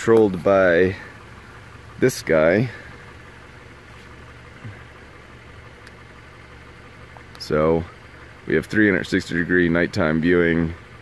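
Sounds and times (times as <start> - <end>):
car engine idling: 0.0 - 11.0
faint click: 5.8 - 6.0.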